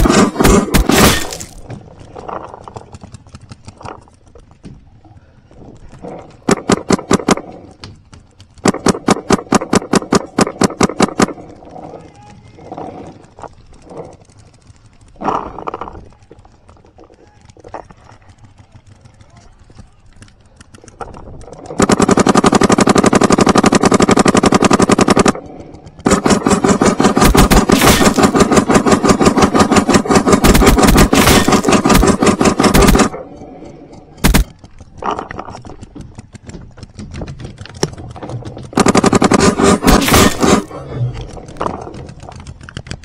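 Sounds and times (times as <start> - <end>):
paintball marker rapid firing: 0.0 - 4.2, 6.4 - 7.7, 8.3 - 11.6, 19.1 - 33.2, 34.2 - 43.0.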